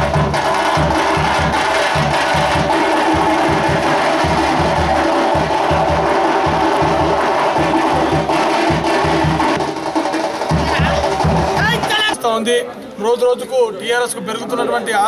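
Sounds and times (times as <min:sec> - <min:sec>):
drums in fast steady beat: 0:00.0 - 0:12.4
percussion clatter: 0:00.0 - 0:12.4.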